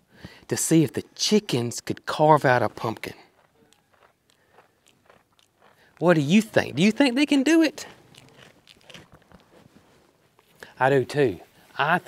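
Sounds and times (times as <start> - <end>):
goat chewing: 2.5 - 11.7.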